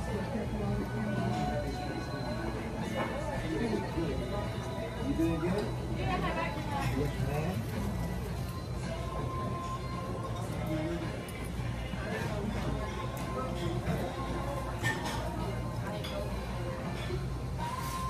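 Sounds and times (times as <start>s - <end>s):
background music: 0.0s - 18.0s
indistinct voices of diners: 0.0s - 18.0s
dishes and cutlery clinking: 6.5s - 8.6s, 9.3s - 18.0s.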